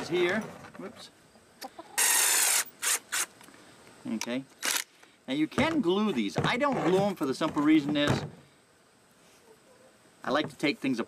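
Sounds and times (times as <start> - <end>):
hen clucking: 1.6 - 2.1.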